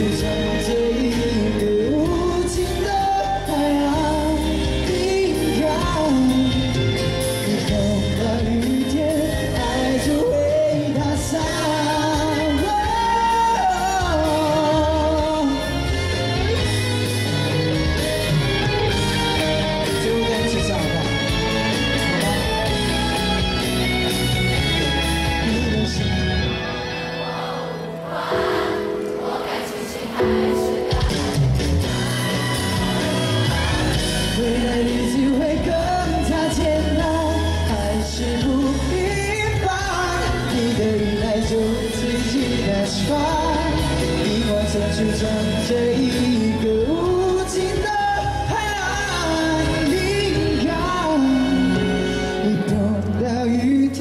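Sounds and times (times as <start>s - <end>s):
man singing into microphone: 0.0s - 17.6s, 24.9s - 26.5s, 33.1s - 54.0s
instrumental accompaniment: 0.0s - 54.0s
pop backing music: 0.0s - 54.0s.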